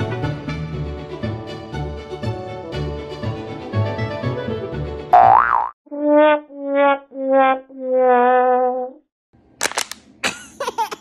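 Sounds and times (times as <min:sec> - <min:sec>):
background music: 0:00.0 - 0:05.2
cartoon boing sound effect: 0:05.2 - 0:08.5.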